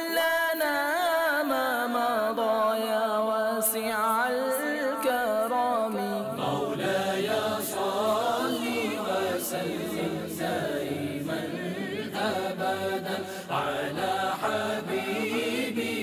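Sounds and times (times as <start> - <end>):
person chanting devotional song: 0.0 - 16.0.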